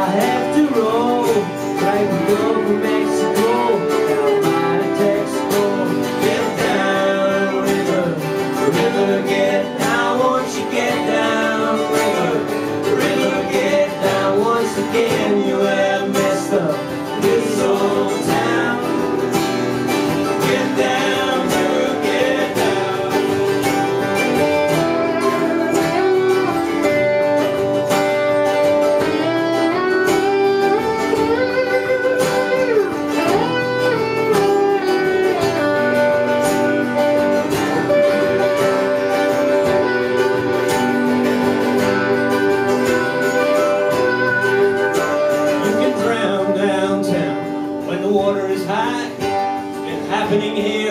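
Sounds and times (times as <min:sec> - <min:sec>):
lap steel guitar sliding lead: 0:00.0 - 0:47.9
mandolin: 0:00.0 - 0:50.9
strummed acoustic guitar: 0:00.0 - 0:50.9.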